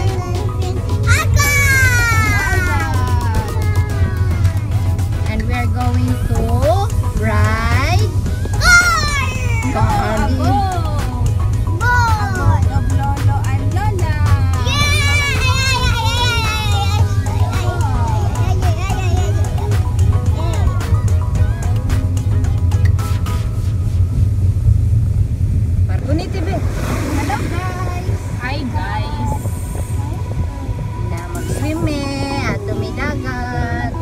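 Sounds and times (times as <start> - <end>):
car cabin rumble: 0.0 - 34.0
child calling out: 1.1 - 4.6, 8.6 - 10.0.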